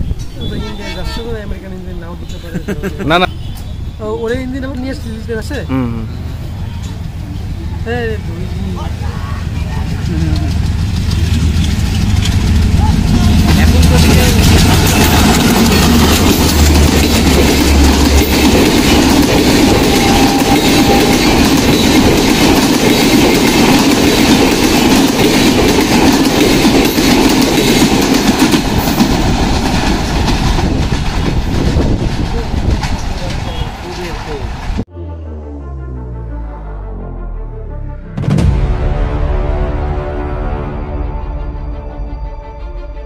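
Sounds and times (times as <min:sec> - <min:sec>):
diesel locomotive engine running hard: 0:03.2 - 0:37.1
train wheels clattering on rails: 0:06.6 - 0:34.8.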